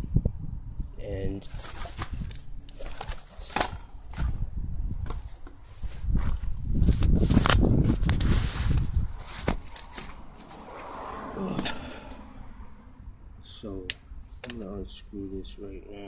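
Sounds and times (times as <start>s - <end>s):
rubbing rumble: 1.4s - 11.6s.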